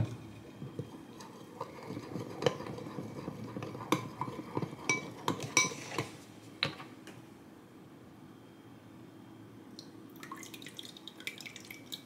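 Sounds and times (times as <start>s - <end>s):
metal spoon scraping glass bowl: 1.2s - 6.1s.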